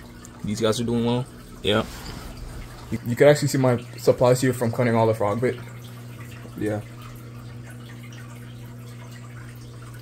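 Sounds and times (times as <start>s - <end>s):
low equipment hum: 0.0s - 10.0s
water trickling and dripping: 0.0s - 10.0s.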